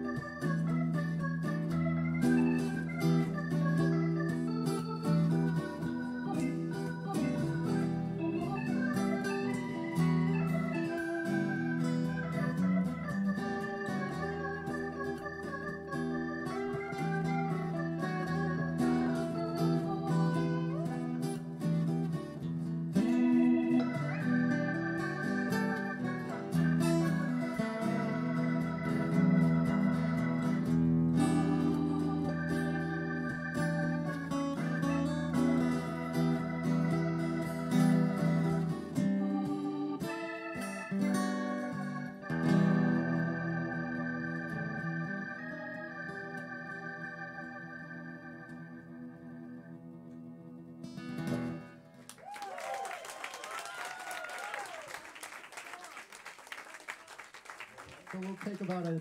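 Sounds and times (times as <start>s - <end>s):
acoustic guitar: 0.0s - 52.3s.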